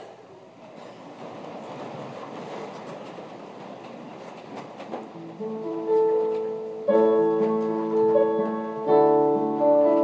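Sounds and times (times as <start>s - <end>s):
congregation rustling and shuffling: 0.7s - 10.0s.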